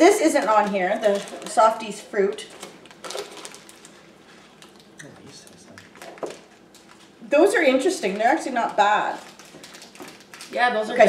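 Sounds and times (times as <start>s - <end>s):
plastic wrappers crinkling: 0.0s - 11.0s.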